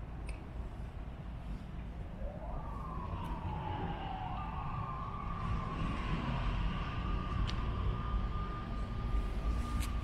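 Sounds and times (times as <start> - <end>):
distant siren wailing: 2.1 - 10.0.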